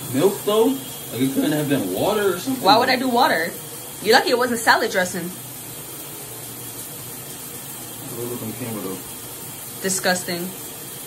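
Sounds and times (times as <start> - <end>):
shower water spraying: 0.0 - 11.0.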